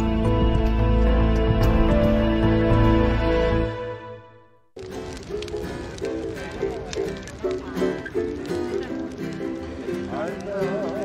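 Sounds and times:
ukulele plucking: 4.8 - 11.0
person's voice: 10.0 - 11.0.

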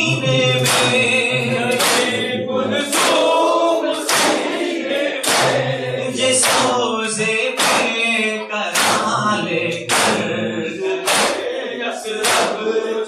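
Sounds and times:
men singing a lament: 0.0 - 13.0.

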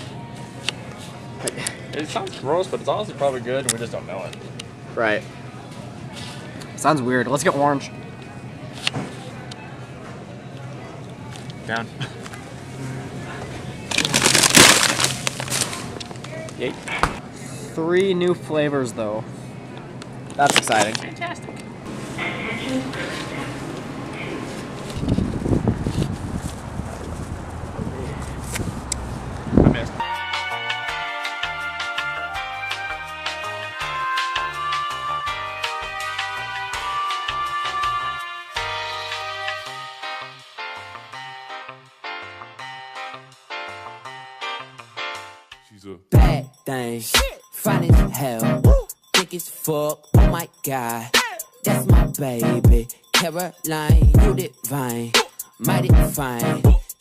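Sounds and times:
shop background noise: 0.0 - 30.0
indistinct voices: 20.9 - 24.6, 45.8 - 56.8.

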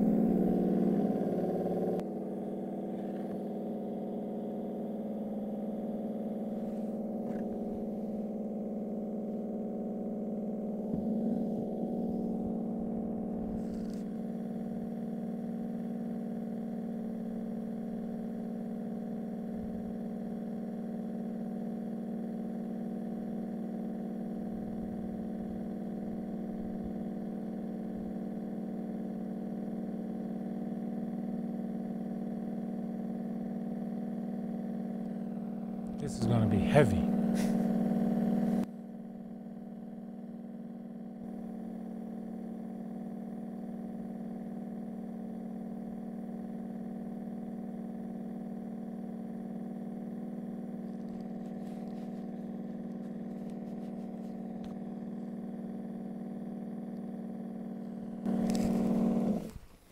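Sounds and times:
foam generator humming: 0.0 - 28.0, 34.9 - 38.7, 50.0 - 59.9.

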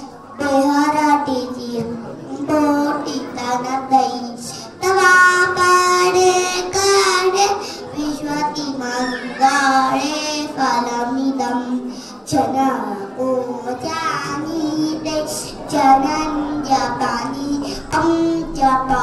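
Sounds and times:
girl singing: 0.0 - 19.0.

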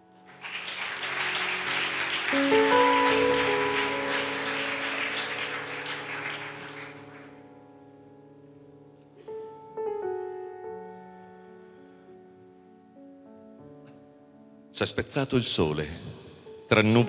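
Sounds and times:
soft background music: 0.0 - 17.0
audience applauding: 0.2 - 7.5.

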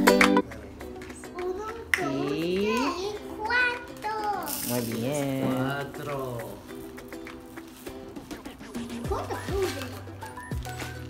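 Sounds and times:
young child speaking: 1.2 - 6.2, 9.0 - 10.1.

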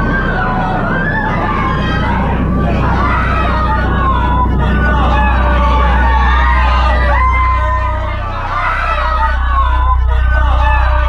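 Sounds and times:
deep bass drone: 0.0 - 11.0
sirens wailing: 0.0 - 11.0.

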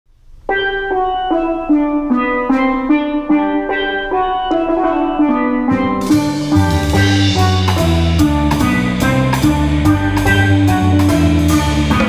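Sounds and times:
steel pan melody: 0.4 - 12.0.

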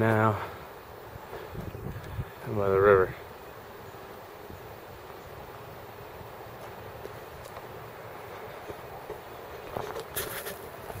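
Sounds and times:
outdoor background noise: 0.0 - 11.0
footsteps on gravel: 6.4 - 11.0.

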